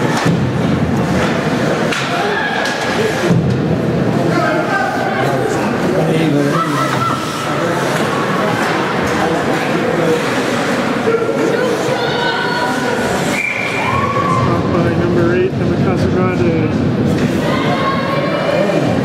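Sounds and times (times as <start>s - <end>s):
voices calling out and chattering: 0.0s - 19.0s.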